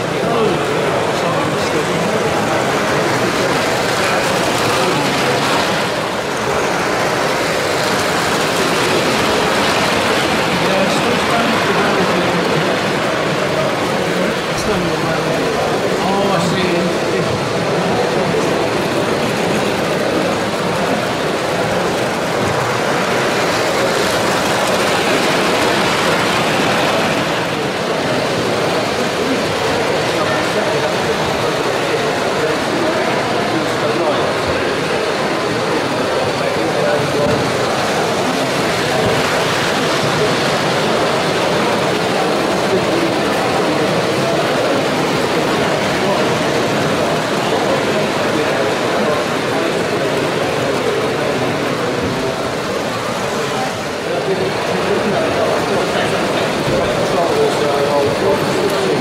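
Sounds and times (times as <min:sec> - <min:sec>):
indistinct chatter of voices: 0:00.0 - 0:59.0
model train on metal track: 0:00.0 - 0:59.0.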